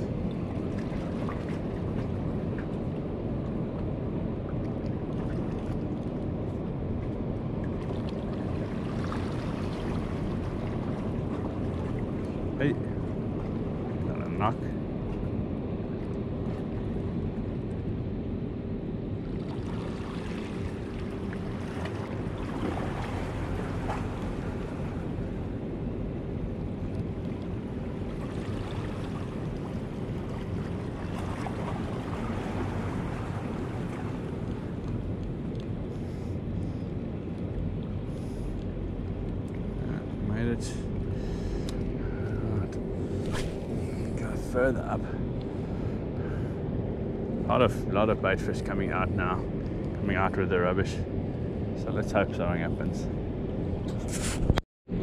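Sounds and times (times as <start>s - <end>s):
faint steady hum: 0.0s - 55.0s
wind noise on microphone: 52.8s - 55.0s.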